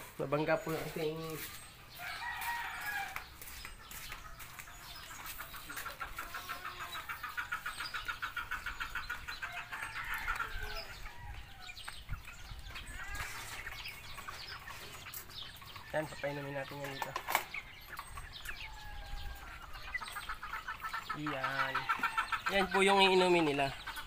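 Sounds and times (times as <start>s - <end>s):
chickens clucking: 0.0s - 24.0s.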